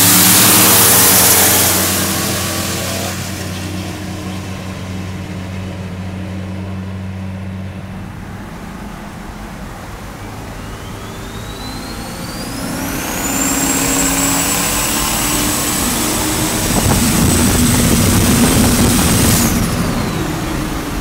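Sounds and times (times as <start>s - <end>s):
turbo whine: 0.0s - 6.1s, 8.0s - 21.0s
engine pulling hard: 0.0s - 21.0s.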